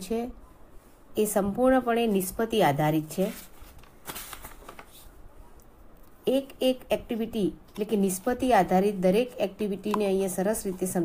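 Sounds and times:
paper pages flipping: 0:03.2 - 0:05.1.

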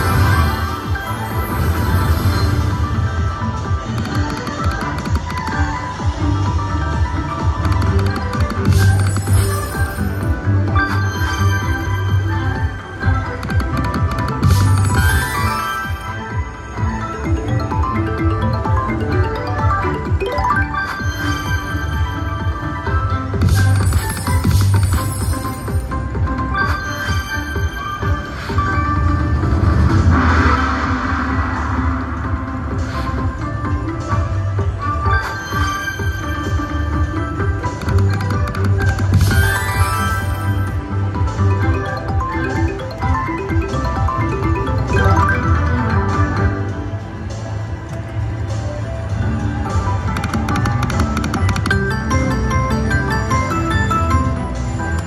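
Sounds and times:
slot machine bonus music: 0:00.0 - 0:30.8, 0:34.9 - 0:47.5, 0:49.1 - 0:55.0.

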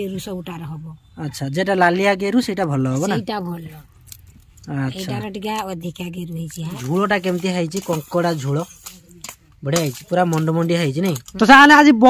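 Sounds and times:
person talking: 0:02.6 - 0:03.8, 0:04.7 - 0:12.0.

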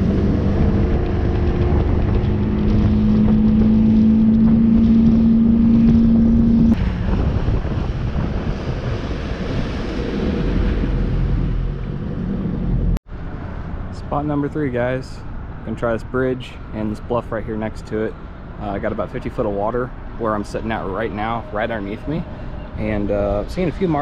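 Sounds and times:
outboard motor running: 0:00.0 - 0:06.8
wind buffeting microphone: 0:00.0 - 0:24.0.

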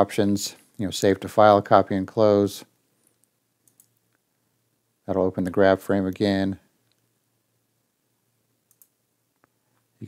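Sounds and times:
computer mouse clicks: 0:03.0 - 0:04.2, 0:08.6 - 0:09.6.

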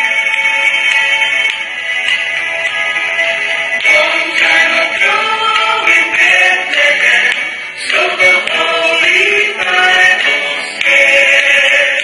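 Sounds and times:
musical accompaniment: 0:00.0 - 0:12.0
choir singing long notes: 0:02.9 - 0:12.0.

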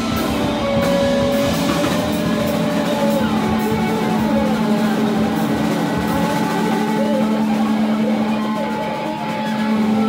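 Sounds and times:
cymbal and drum strokes: 0:00.0 - 0:10.0
loud steady drone: 0:00.0 - 0:10.0.

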